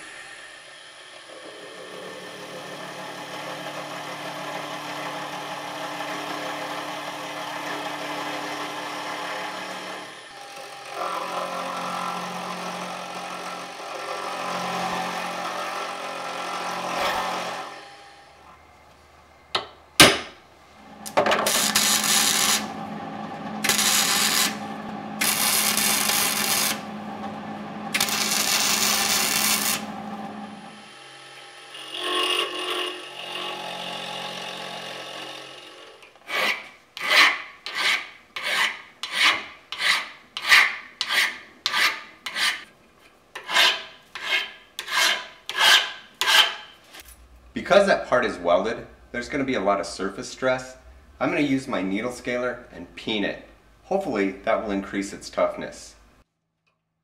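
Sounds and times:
milling machine cutting steel: 20.9s - 36.0s
hand file rasping on steel: 36.2s - 42.7s, 43.4s - 46.8s.

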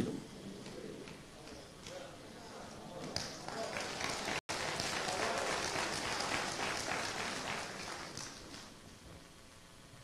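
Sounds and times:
congregation applauding: 3.2s - 8.7s.

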